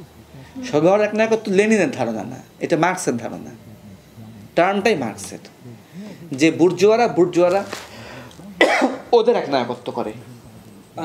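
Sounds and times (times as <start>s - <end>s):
man speaking: 0.4s - 11.0s
cough: 8.5s - 9.1s.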